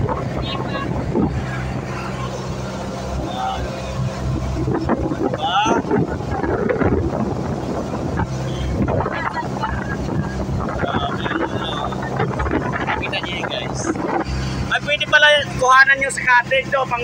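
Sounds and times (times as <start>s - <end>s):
boat engine droning: 0.0s - 17.0s
wind buffeting microphone: 0.0s - 17.0s.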